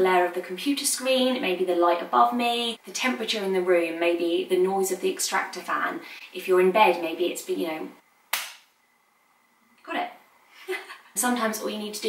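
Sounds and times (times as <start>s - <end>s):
hand clap: 8.3s - 8.7s.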